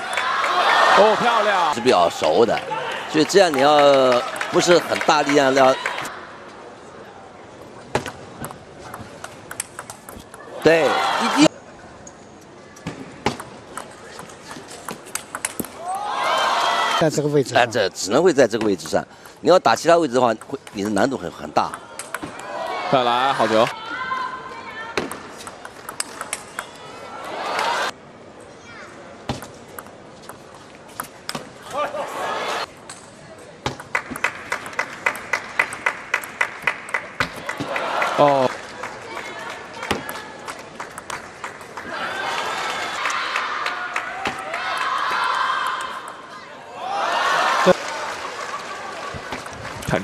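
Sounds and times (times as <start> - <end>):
crowd cheering and shouting: 0.0 - 3.8, 10.6 - 11.5, 15.8 - 17.2, 27.0 - 27.9, 41.8 - 50.0
table tennis ball clicking: 8.0 - 10.4, 14.9 - 15.8, 20.3 - 22.3, 25.1 - 26.7.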